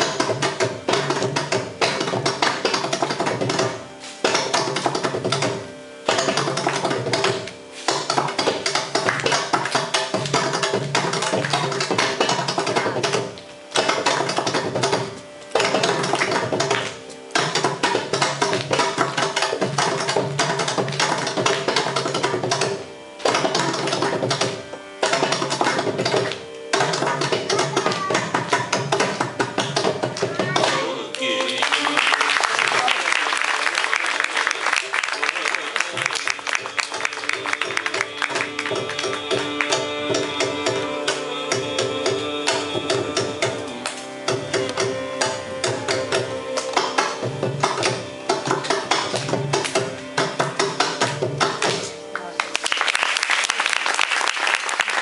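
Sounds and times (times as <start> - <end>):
hand drum strokes: 0.0 - 30.9, 35.9 - 52.1.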